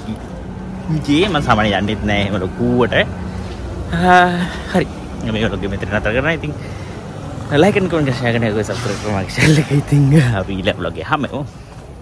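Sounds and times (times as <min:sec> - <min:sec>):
man talking: 0:00.0 - 0:03.2, 0:03.8 - 0:06.6, 0:07.4 - 0:11.5
street background noise: 0:00.0 - 0:12.0.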